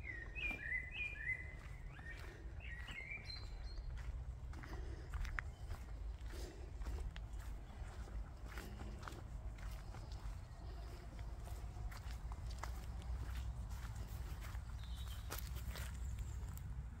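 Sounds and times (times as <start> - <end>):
footsteps on woodland path: 0.0 - 17.0.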